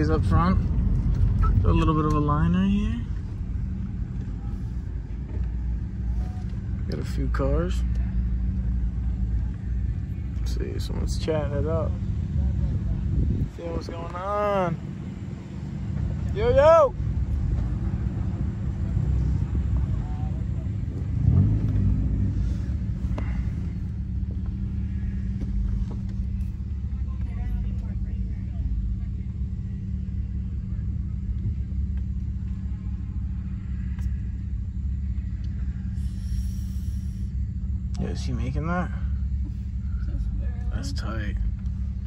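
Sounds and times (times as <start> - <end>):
car engine idling: 0.0 - 42.0.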